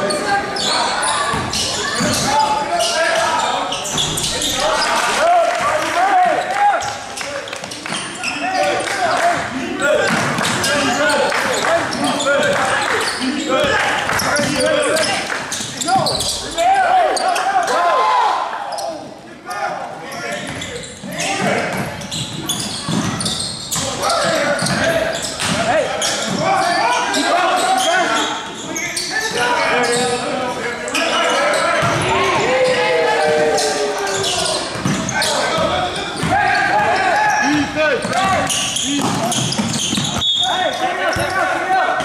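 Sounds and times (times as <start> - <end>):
players calling out: 0.0 - 42.0.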